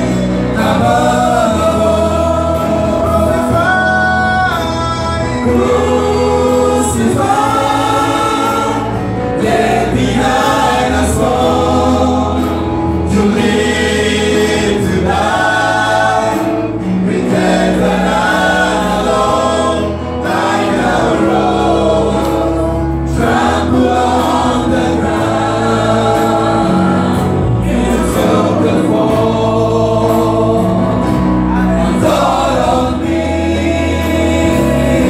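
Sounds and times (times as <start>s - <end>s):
group of singers singing: 0.0s - 35.0s
held keyboard chords: 0.0s - 35.0s.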